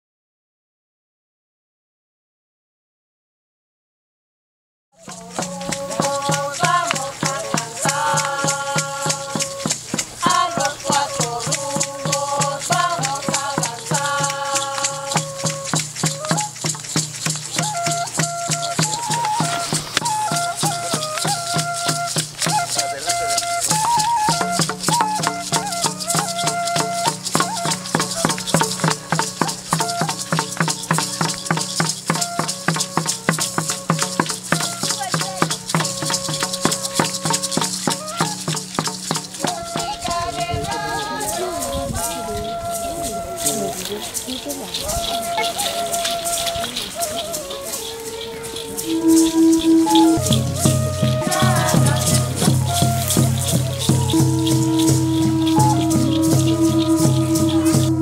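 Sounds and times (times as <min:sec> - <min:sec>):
rattles shaken: 0:05.0 - 0:58.0
melody of held notes: 0:40.4 - 0:58.0.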